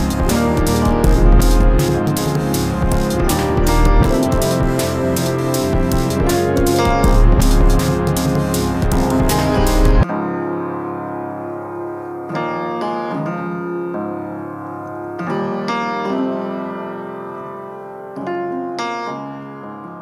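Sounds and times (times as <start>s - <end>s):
sustained piano chords: 0.0s - 19.2s.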